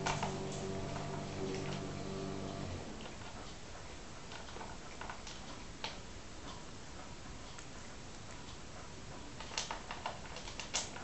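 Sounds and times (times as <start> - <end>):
cat crunching dry food: 0.0 - 1.9, 4.3 - 6.0, 9.4 - 11.0.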